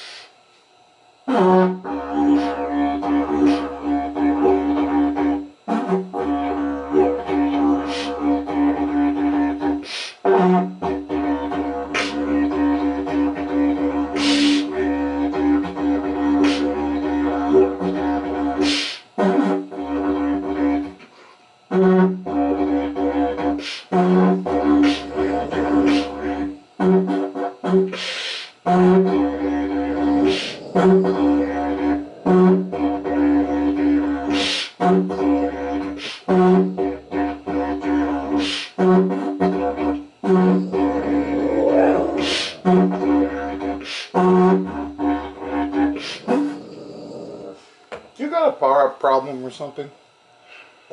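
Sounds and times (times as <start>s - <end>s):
didgeridoo drone: 1.2s - 21.1s, 21.7s - 47.6s.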